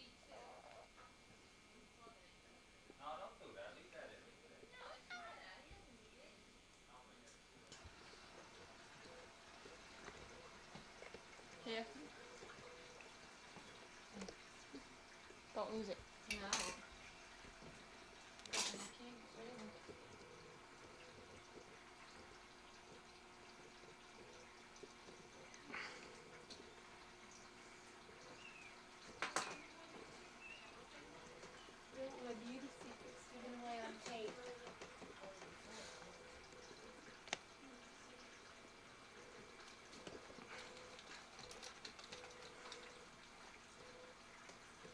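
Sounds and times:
faint voices: 0:27.6 - 0:38.4.

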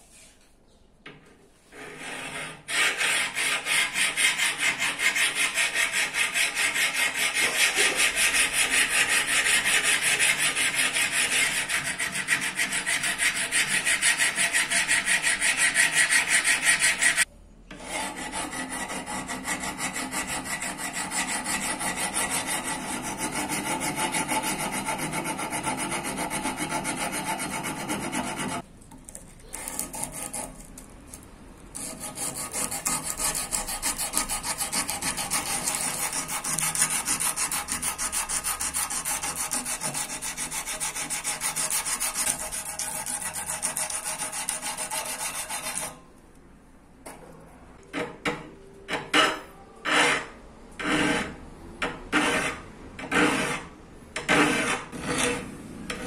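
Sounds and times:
file scraping steel blade: 0:01.7 - 0:28.6, 0:29.4 - 0:46.1, 0:47.8 - 0:56.0.

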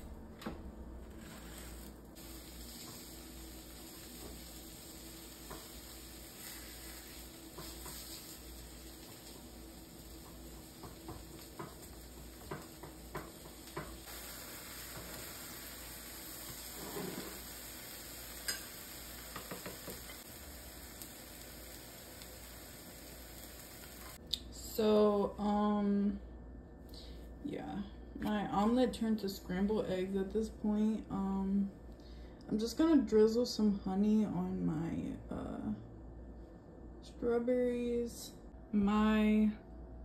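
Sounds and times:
eggs sizzling in a frying pan: 0:01.2 - 0:24.2
spatula tapping and scraping pan: 0:07.5 - 0:08.4, 0:09.0 - 0:14.1, 0:18.4 - 0:18.7, 0:19.3 - 0:20.2.

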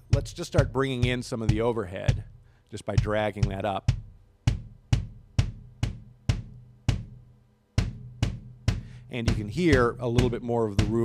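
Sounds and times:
drum hits: 0:00.0 - 0:11.0.

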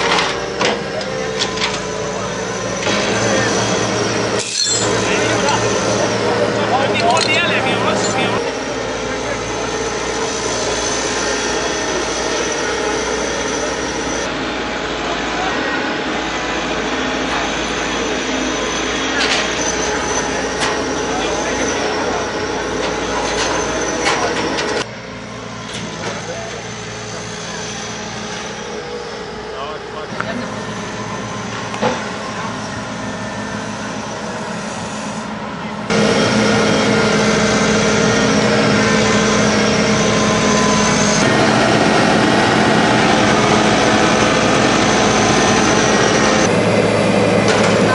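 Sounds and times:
people talking: 0:00.0 - 0:04.1, 0:04.7 - 0:10.8, 0:14.9 - 0:24.9, 0:25.8 - 0:28.2, 0:29.4 - 0:34.6, 0:38.2 - 0:41.5, 0:47.4 - 0:47.9
diesel engines running: 0:00.0 - 0:47.9.

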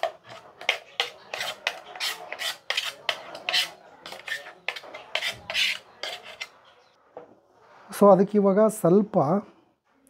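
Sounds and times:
batter scraped from a jar: 0:00.2 - 0:06.6.

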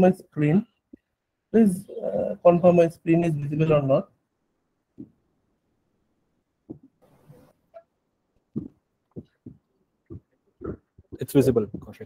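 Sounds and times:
low muffled sounds: 0:00.0 - 0:03.7, 0:04.4 - 0:12.0.

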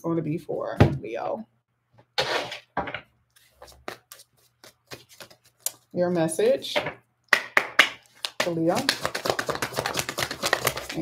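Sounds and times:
cards being shuffled: 0:03.4 - 0:05.9, 0:08.1 - 0:11.0.

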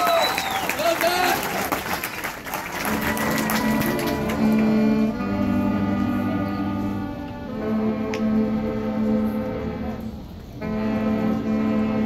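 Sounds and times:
crowd cheering and applause: 0:00.0 - 0:04.8
marching band low held notes: 0:02.7 - 0:12.0.

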